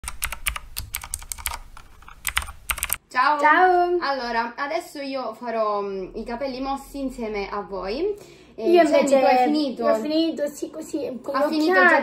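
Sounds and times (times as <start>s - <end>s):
keyboard typing clicks: 0.0s - 3.0s.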